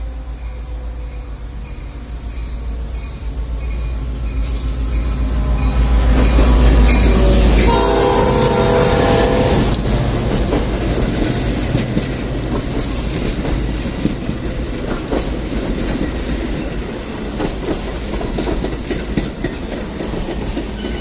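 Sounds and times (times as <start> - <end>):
deep train rumble: 0.0 - 21.0
train horn chord: 6.8 - 9.8.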